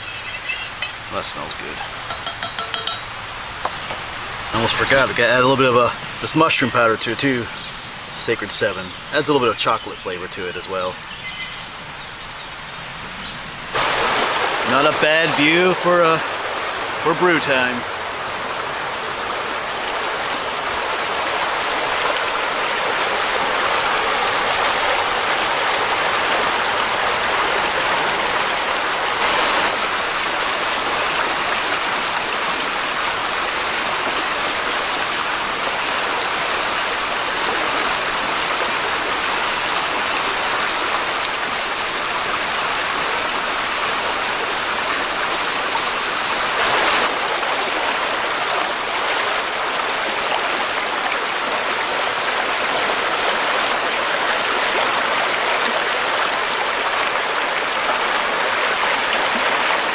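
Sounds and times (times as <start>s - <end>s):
creek babbling over stones: 0.0s - 59.9s.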